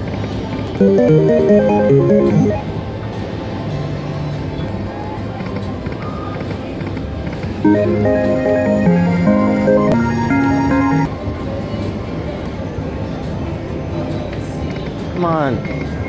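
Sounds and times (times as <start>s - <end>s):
steady background noise: 0.0s - 16.0s
slot machine electronic melodies: 0.8s - 2.8s, 7.6s - 11.1s.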